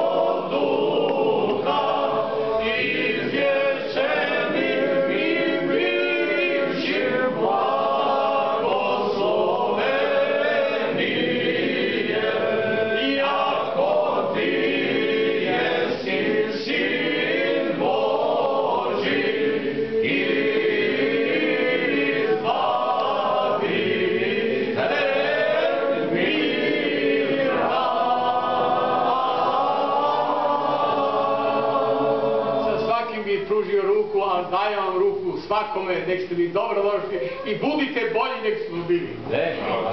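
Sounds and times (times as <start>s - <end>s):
group singing church chant: 0.0s - 33.0s, 39.5s - 39.9s.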